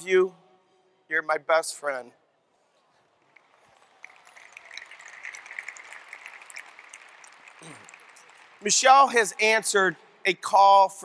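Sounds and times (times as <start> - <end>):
audience applause: 3.4 - 9.4.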